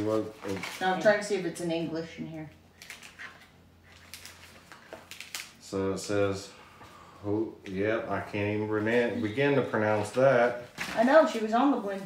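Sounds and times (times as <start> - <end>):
paper packaging crinkling: 0.0 - 1.3, 2.7 - 5.6.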